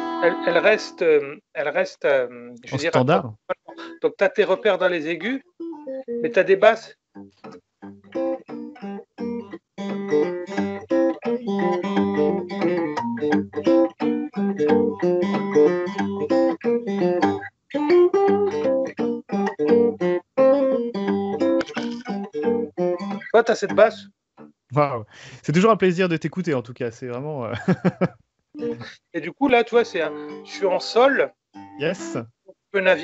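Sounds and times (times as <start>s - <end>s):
fingerstyle acoustic guitar: 7.4s - 23.9s, 28.6s - 29.0s.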